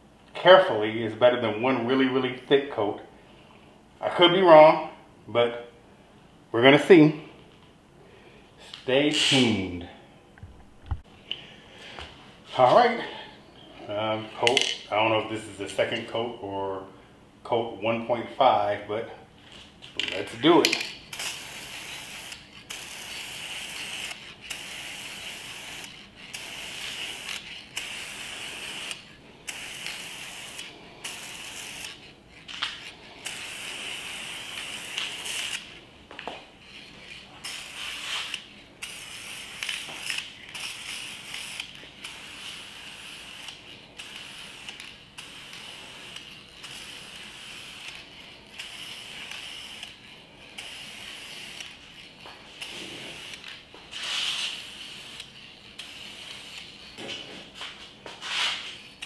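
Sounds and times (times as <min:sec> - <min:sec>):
spray paint can hissing: 0:20.0 - 0:59.0.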